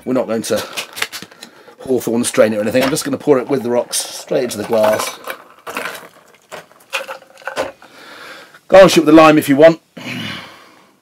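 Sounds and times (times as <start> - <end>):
ice cubes clattering in metal tin: 2.2 - 8.0.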